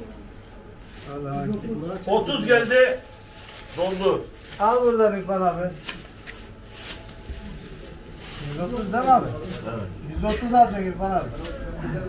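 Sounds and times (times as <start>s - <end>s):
faint murmur of voices: 0.0s - 12.0s
plastic bag crinkling: 0.7s - 11.6s.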